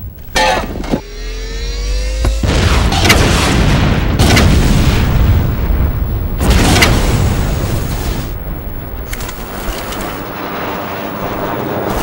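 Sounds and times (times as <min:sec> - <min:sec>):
mechanical drone rising in pitch: 0:00.9 - 0:02.9.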